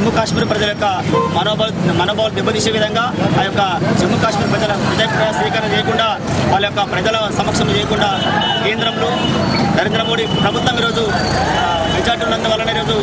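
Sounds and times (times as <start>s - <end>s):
man speaking: 0.0s - 13.0s
street traffic noise: 0.0s - 13.0s.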